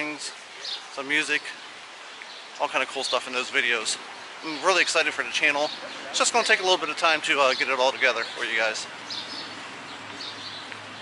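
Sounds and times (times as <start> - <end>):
birds chirping: 0.0 - 11.0
low background noise: 0.0 - 11.0.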